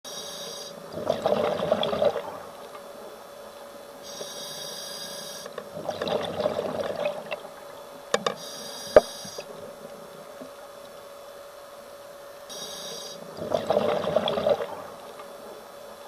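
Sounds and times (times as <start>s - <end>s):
regulator inhale hiss: 0.1s - 0.8s, 4.0s - 5.6s, 8.4s - 9.5s, 12.5s - 13.3s
exhaled bubbles rushing: 0.9s - 2.6s, 5.7s - 8.0s, 13.3s - 15.1s.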